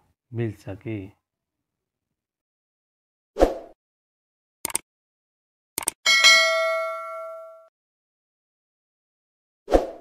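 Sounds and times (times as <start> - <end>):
notification bell ding: 6.1 - 7.7.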